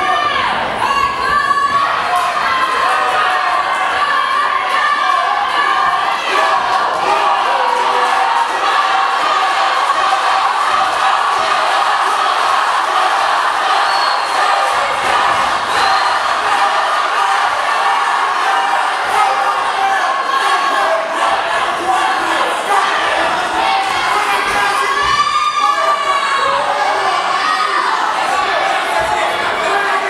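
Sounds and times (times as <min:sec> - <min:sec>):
spectators shouting and cheering: 0:00.0 - 0:30.0.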